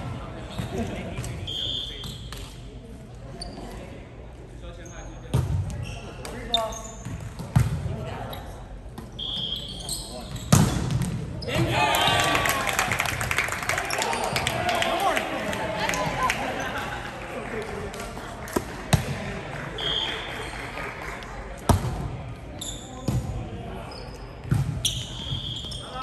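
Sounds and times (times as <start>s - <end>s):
sneaker squeaks on hardwood floor: 9.2s - 10.7s, 23.9s - 26.0s
players shouting: 11.5s - 17.0s.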